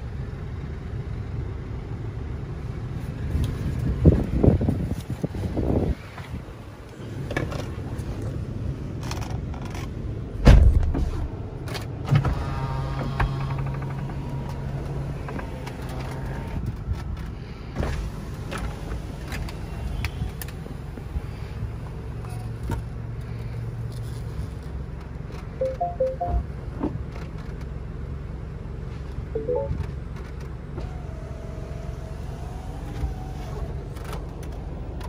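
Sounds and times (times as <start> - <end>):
thump: 10.4 - 11.2
two-note chime: 25.6 - 26.4, 29.4 - 29.8.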